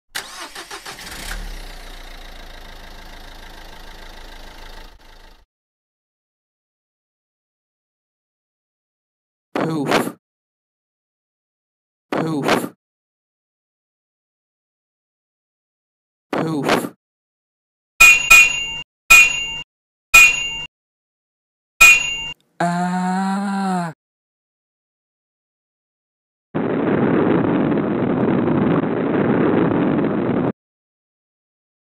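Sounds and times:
car engine cranking and idling: 0:00.2 - 0:05.4
short metallic dings: 0:18.0 - 0:19.6, 0:20.2 - 0:20.7, 0:21.8 - 0:22.4.

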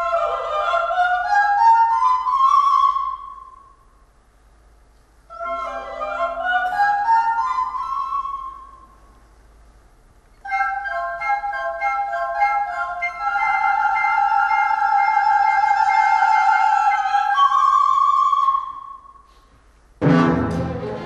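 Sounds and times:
classical orchestra playing: 0:20.0 - 0:21.0.

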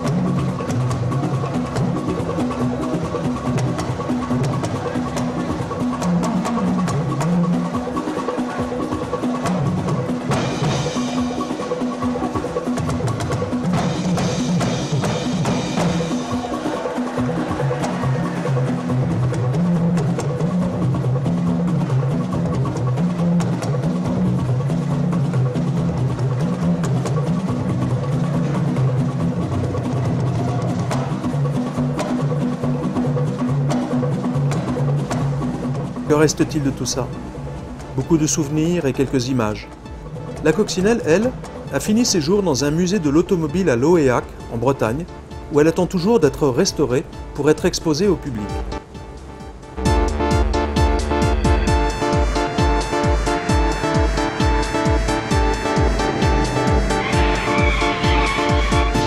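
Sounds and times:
band percussion and drums: 0:00.0 - 0:59.0
bass line: 0:48.0 - 0:59.0.

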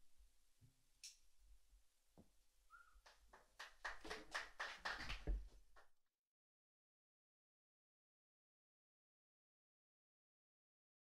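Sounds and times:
hand clapping: 0:03.0 - 0:05.9.

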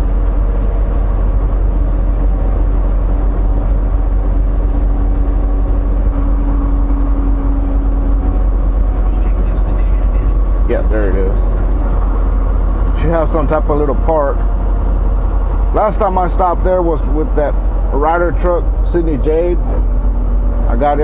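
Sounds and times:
diesel engine: 0:00.0 - 0:21.0
road rumble: 0:00.0 - 0:21.0
faint droning tone: 0:05.3 - 0:11.1.

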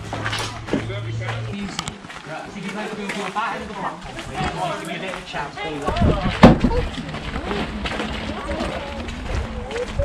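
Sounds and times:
footsteps on gravel: 0:00.0 - 0:10.0
indistinct voices: 0:00.0 - 0:10.0.

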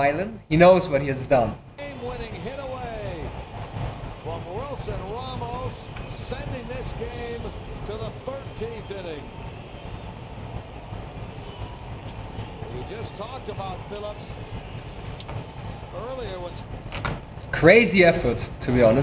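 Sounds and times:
commentator talking: 0:00.0 - 0:03.3, 0:04.3 - 0:09.3, 0:17.5 - 0:19.0
ballpark crowd murmur: 0:01.6 - 0:19.0.

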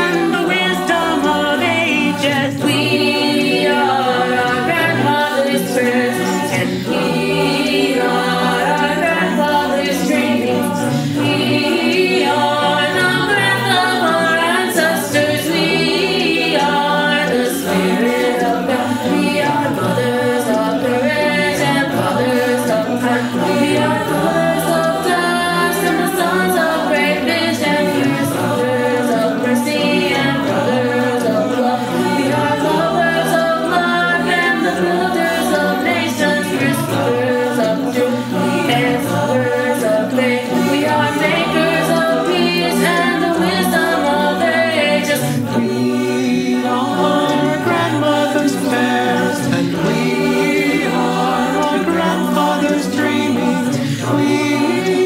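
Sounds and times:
choir singing a cappella: 0:00.0 - 0:55.0.

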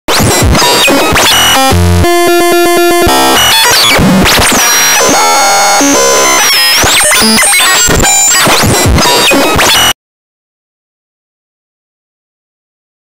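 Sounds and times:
loud electronic music: 0:00.1 - 0:10.0.

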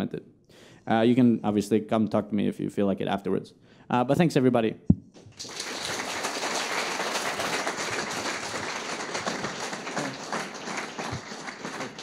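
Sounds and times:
audience applauding: 0:05.3 - 0:12.0.

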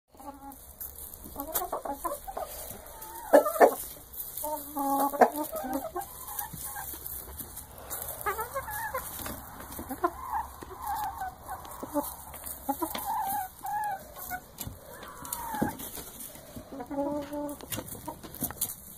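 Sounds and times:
chickens clucking: 0:00.1 - 0:18.9.

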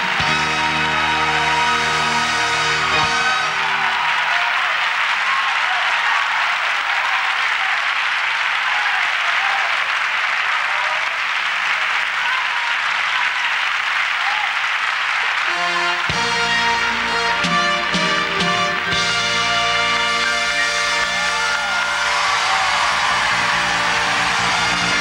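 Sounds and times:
audience applauding: 0:00.0 - 0:25.0.

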